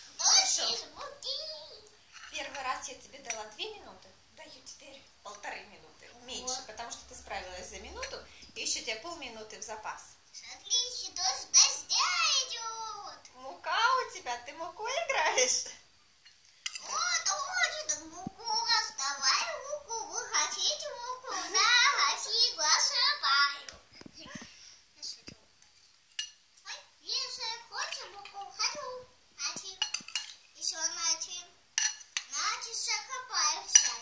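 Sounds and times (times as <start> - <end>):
child's voice: 0.1 - 2.0, 10.4 - 14.2, 16.8 - 25.3, 26.6 - 30.0, 30.6 - 31.6, 32.3 - 34.0.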